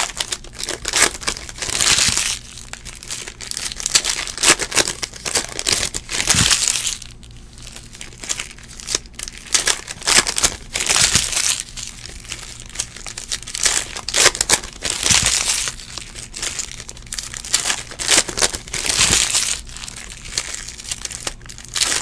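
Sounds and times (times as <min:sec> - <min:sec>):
foil wrappers crinkling and tearing: 0:00.0 - 0:22.0.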